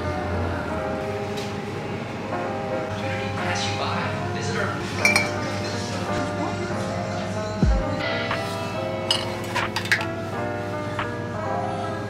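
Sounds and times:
glass vase clinking: 5.0s - 5.7s, 9.1s - 10.2s.

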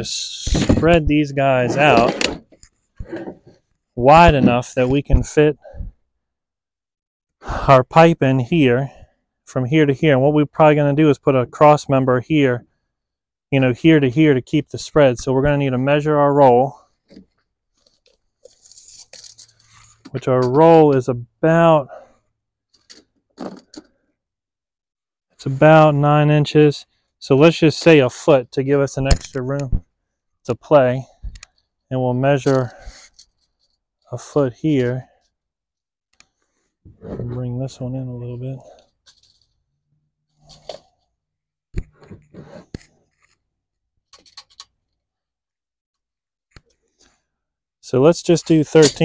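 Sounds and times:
wooden post scraping and knocking: 1.6s - 3.6s, 4.2s - 4.7s.

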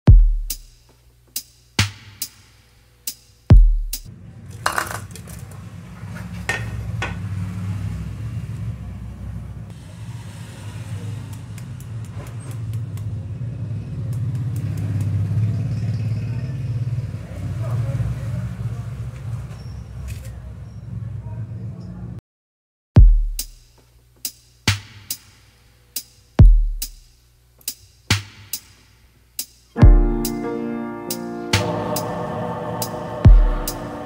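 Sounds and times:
steady low rumble: 31.6s - 34.0s.

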